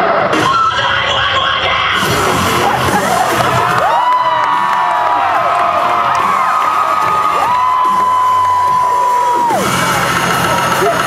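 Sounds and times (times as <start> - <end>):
dance music: 0.0 - 11.0
audience cheering and whooping: 2.0 - 11.0.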